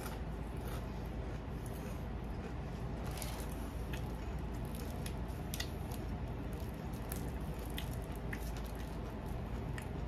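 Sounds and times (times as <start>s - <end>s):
person chewing food: 0.0s - 10.0s
steady low hum: 0.0s - 10.0s.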